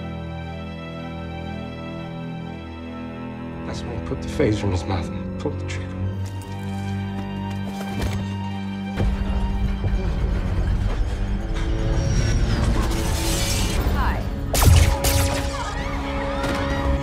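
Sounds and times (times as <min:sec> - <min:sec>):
dramatic film music: 0:00.0 - 0:17.0.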